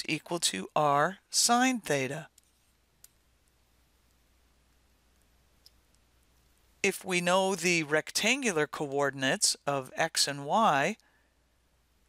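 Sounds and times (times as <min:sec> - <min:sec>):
person speaking: 0:00.0 - 0:02.3, 0:06.8 - 0:11.0.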